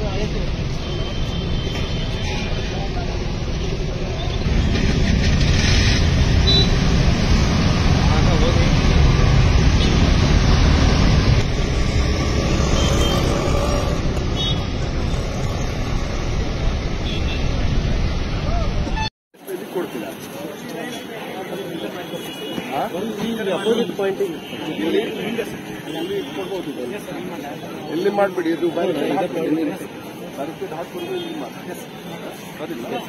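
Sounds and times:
motor traffic passing: 1.9s - 18.8s
indistinct voices: 11.4s - 16.9s.

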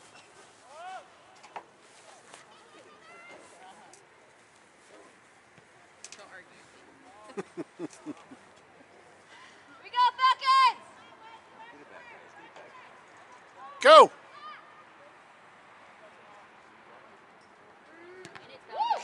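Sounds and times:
people shouting: 13.8s - 14.1s.

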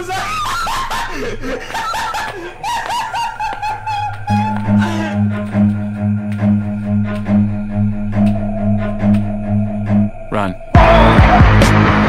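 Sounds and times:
high-pitched laughter: 0.0s - 5.2s.

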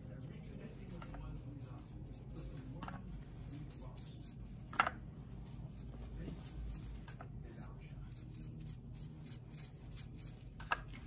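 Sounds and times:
brush scratching through wet hair: 0.0s - 4.6s, 5.4s - 10.6s.

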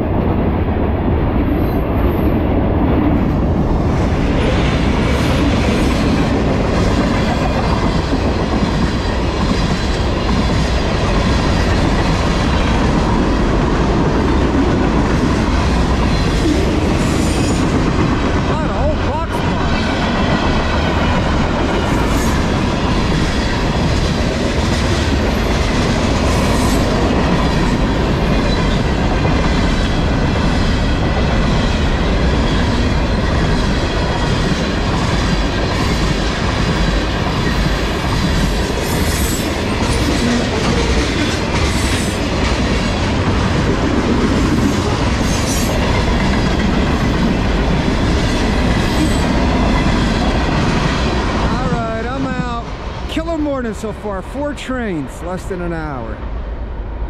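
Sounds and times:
freight train rolling past: 0.0s - 57.0s
wheels clacking over rail joints: 19.5s - 51.7s.

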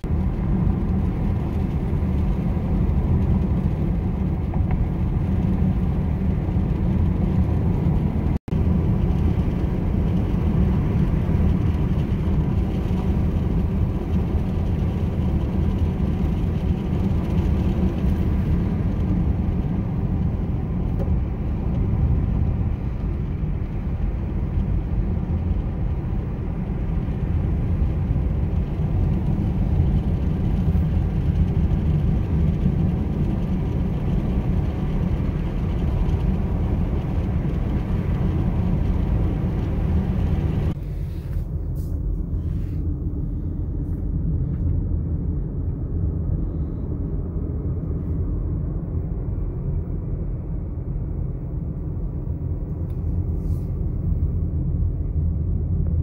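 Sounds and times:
car cabin tyre and engine rumble: 0.0s - 56.0s.

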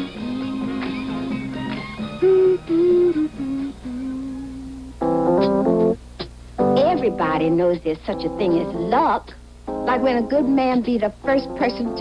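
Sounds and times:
soft wordless melody: 0.0s - 5.3s.

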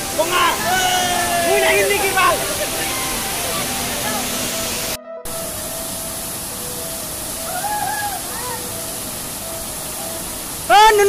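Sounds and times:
waterfall rushing into pool: 0.0s - 11.0s.

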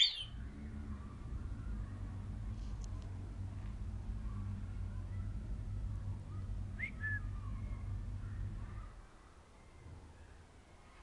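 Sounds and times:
parrot whistling: 0.0s - 0.3s.

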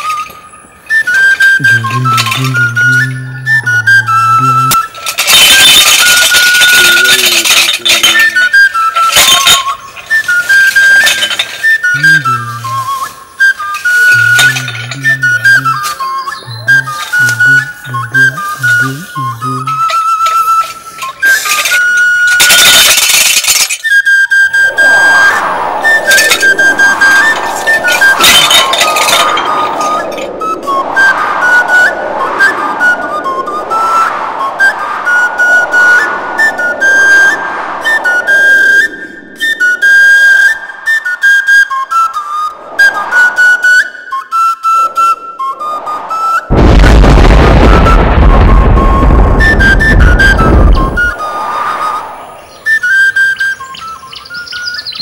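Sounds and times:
film background music with flute: 0.0s - 55.0s
loud rushing noise with deep rumble: 24.5s - 40.9s, 45.9s - 52.6s.

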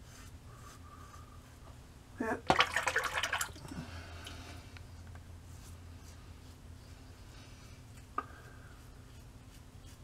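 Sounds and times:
tap water splashing: 2.5s - 3.7s.

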